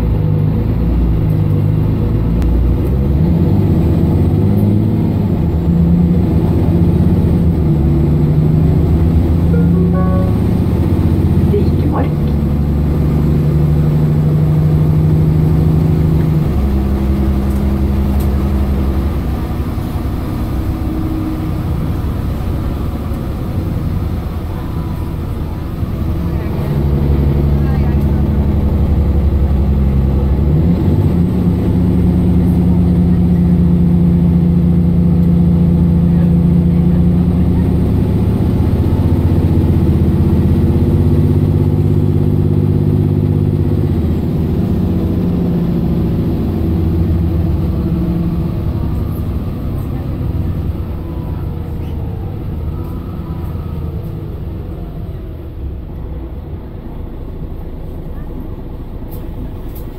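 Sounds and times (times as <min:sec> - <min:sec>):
bus diesel engine accelerating: 0:00.0 - 0:59.9.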